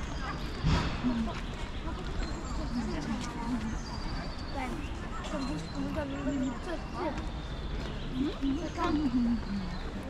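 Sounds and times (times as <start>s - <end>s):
people talking: 0.0s - 7.3s, 8.1s - 10.0s.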